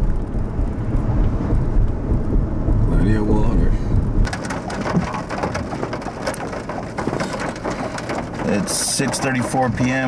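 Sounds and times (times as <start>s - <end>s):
low road rumble: 0.0s - 10.0s
raindrops ticking on windshield: 4.2s - 10.0s.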